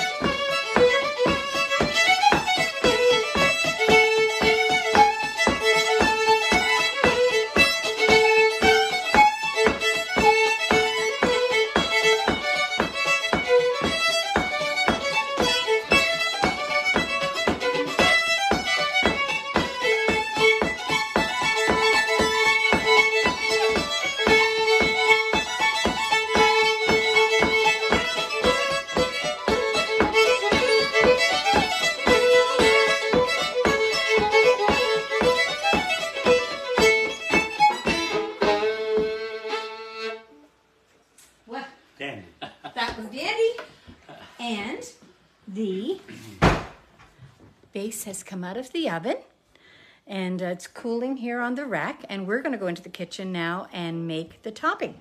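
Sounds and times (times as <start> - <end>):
two fiddles playing a quick tune: 0.0 - 40.6.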